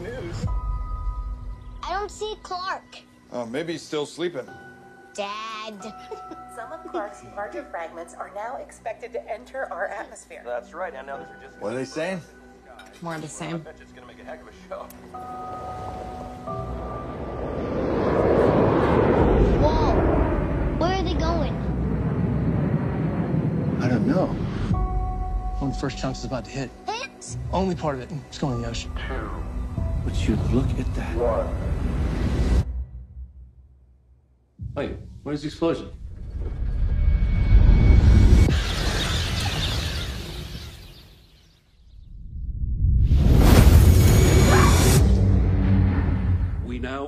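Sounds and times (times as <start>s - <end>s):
held musical tone: 11.0s - 18.4s, 24.7s - 31.8s
deep rumbling roar: 16.6s - 24.8s
hissing crash: 36.0s - 41.2s, 43.1s - 46.3s.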